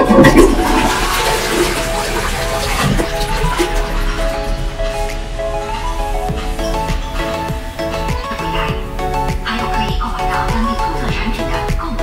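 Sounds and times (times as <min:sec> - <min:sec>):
toilet water rushing and swirling: 0:00.0 - 0:11.6.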